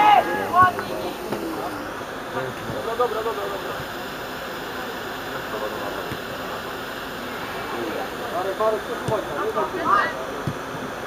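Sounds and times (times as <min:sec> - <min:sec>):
distant players shouting: 0:00.0 - 0:02.0
steady hiss: 0:00.0 - 0:11.0
ball being kicked: 0:09.0 - 0:09.3.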